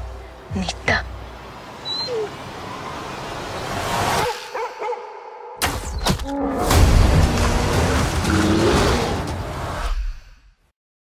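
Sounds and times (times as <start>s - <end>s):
splashing and churning water: 6.6s - 9.6s.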